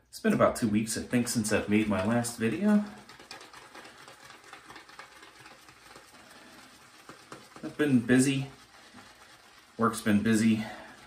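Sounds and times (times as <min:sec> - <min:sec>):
shaving brush scratching soap: 0:00.4 - 0:11.0.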